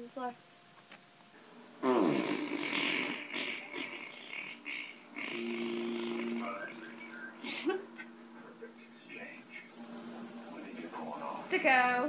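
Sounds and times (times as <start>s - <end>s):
held vocal note: 5.2s - 9.8s.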